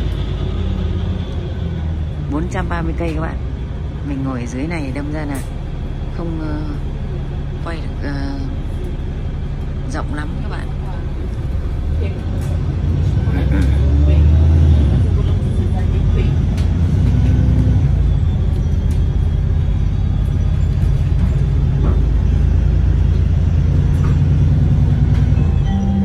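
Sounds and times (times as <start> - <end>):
bus engine rumbling: 0.0 - 26.0.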